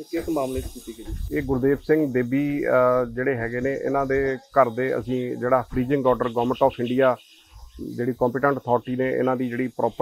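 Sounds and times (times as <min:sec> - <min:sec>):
man talking: 0:00.0 - 0:07.2, 0:07.8 - 0:10.0.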